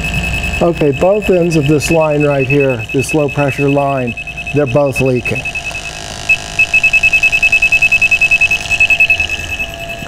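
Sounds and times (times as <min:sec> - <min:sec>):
rapid high electronic beeping: 0:00.0 - 0:10.0.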